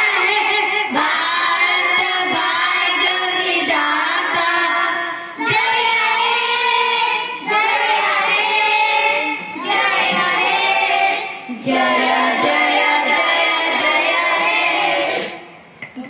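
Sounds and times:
children singing together: 0.0 - 15.5.

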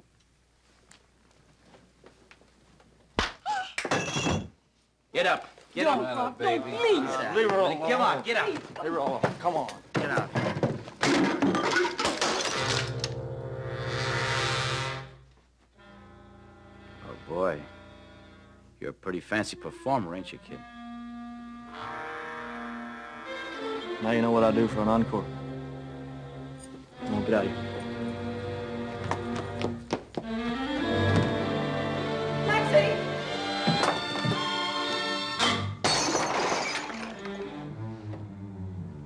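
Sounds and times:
glass breaking: 11.0 - 13.0, 35.8 - 37.3
orchestral strings film music: 15.8 - 35.8, 37.1 - 39.0.

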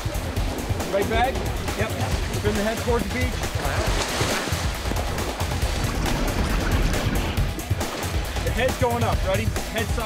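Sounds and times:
background music: 0.0 - 10.0
water splashing and churning: 0.0 - 10.0.

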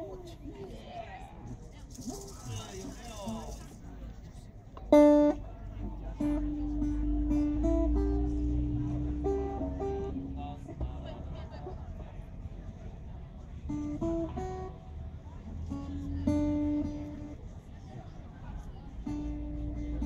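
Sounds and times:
acoustic guitars playing slow song: 4.7 - 20.0.

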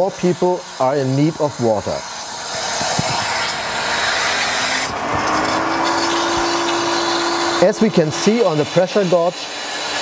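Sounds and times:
pump whine: 0.0 - 10.0
water rushing through valve: 0.0 - 10.0.

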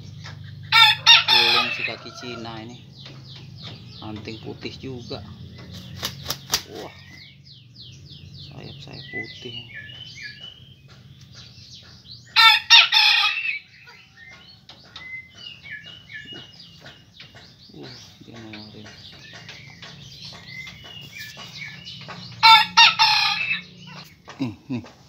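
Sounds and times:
rooster crowing: 0.7 - 2.7, 12.4 - 13.6, 22.4 - 23.7.

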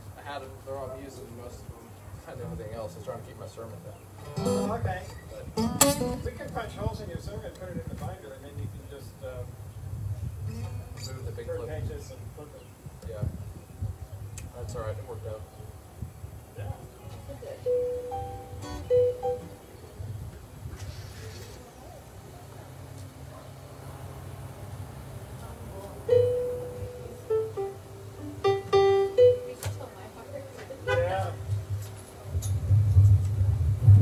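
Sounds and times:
wind buffeting microphones: 4.1 - 17.5, 19.6 - 21.9, 30.8 - 34.0
single guitar notes ringing: 4.2 - 6.5, 17.6 - 19.7, 26.1 - 29.8
low outdoor rumble: 13.3 - 34.0.

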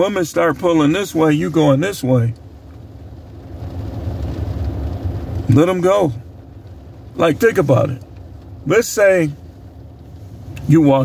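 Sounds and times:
faint steady hum: 0.0 - 11.0
vehicle rumble inside car: 0.0 - 11.0.

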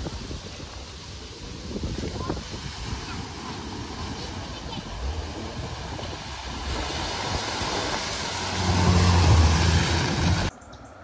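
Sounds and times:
car splashing through water: 0.0 - 10.6
car engine low hum: 3.6 - 11.0.

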